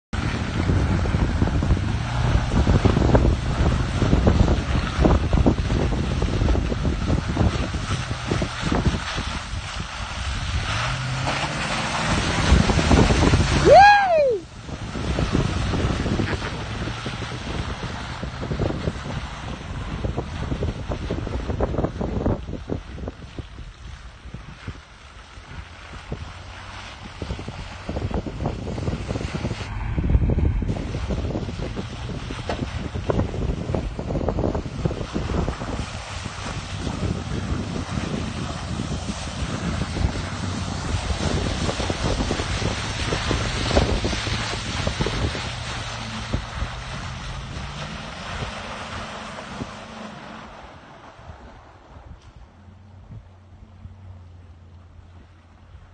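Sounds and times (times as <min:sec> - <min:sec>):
wind buffeting microphone: 0:00.1 - 0:54.2
distant pickup truck engine: 0:00.2 - 0:55.9.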